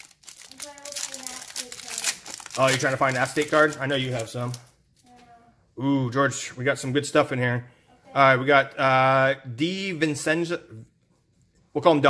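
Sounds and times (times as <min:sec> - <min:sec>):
foil wrapper crinkling and tearing: 0:00.0 - 0:04.7.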